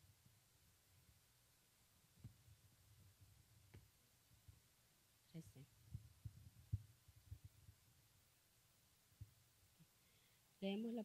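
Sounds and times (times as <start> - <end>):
faint low thumps and bumps: 5.7 - 8.2, 9.1 - 9.5.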